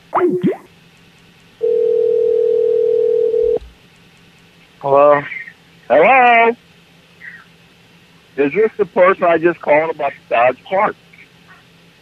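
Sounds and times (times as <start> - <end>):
telephone ringback tone: 1.6 - 3.6.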